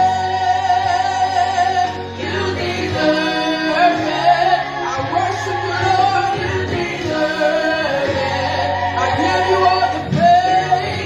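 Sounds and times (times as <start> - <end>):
musical accompaniment: 0.0 - 11.0
woman singing into microphone: 0.0 - 11.0.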